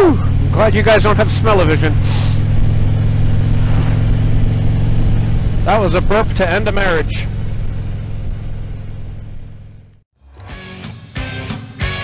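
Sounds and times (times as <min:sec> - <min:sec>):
motorcycle engine cruising: 0:00.0 - 0:10.1
wind noise: 0:02.0 - 0:09.4.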